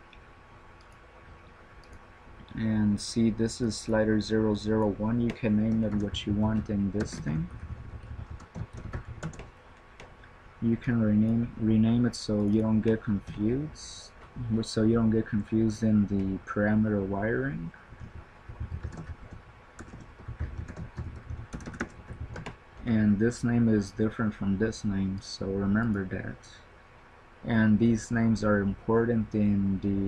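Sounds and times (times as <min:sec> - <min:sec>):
typing on computer keyboard: 0:05.2 - 0:10.1, 0:18.0 - 0:22.6
keyboard keystroke clicks: 0:07.0 - 0:10.1.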